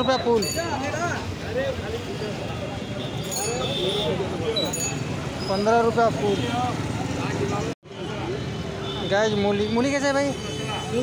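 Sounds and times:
market chatter: 0:00.0 - 0:11.0.

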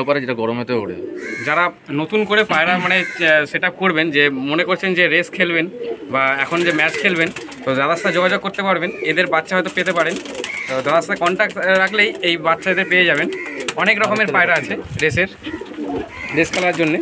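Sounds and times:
man talking: 0:00.0 - 0:15.6, 0:16.2 - 0:17.0
pigeons cooing: 0:00.0 - 0:17.0.

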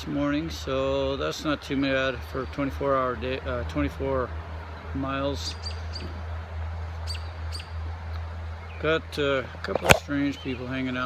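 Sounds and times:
animal chirping: 0:07.1 - 0:07.8.

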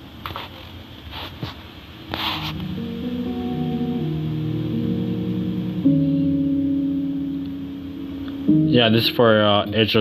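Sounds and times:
music of sustained chords: 0:02.4 - 0:10.0.

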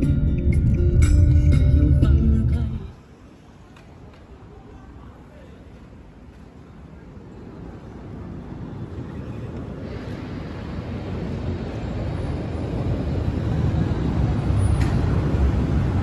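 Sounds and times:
traffic rumble: 0:00.0 - 0:16.0.

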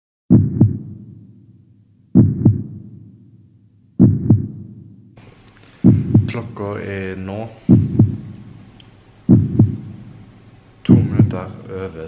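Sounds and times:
heartbeat thumps: 0:00.3 - 0:01.4, 0:02.1 - 0:03.2, 0:04.0 - 0:05.0, 0:05.8 - 0:06.6, 0:07.6 - 0:08.6, 0:09.3 - 0:10.2, 0:10.9 - 0:11.6
faint room noise: 0:01.0 - 0:12.0.

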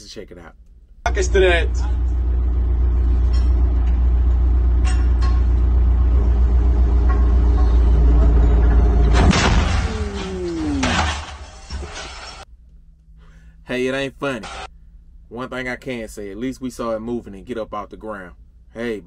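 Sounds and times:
machine engine running: 0:01.1 - 0:11.5
tyre bursting with loud blast: 0:09.1 - 0:12.4.

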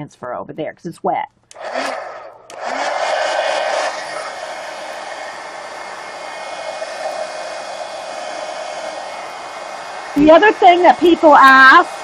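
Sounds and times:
heat gun blowing: 0:01.5 - 0:12.0.

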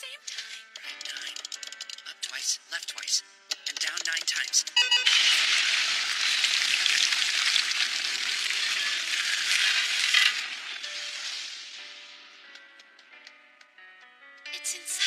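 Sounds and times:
rushing crackling noise: 0:05.1 - 0:12.0.

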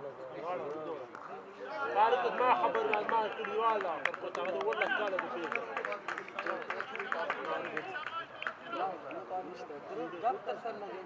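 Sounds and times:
men talking indistinctly: 0:00.0 - 0:11.0.

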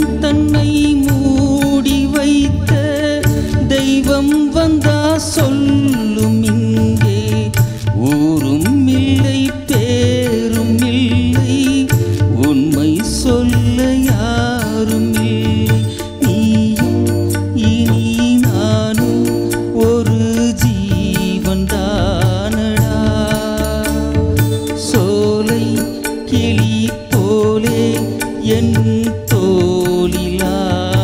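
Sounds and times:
band playing film song: 0:00.0 - 0:31.0.

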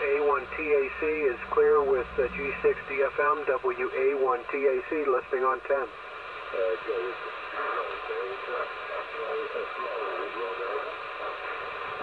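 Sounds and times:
weak voice over radio: 0:00.0 - 0:05.9, 0:06.5 - 0:12.0
radio receiver hiss: 0:00.0 - 0:12.0.

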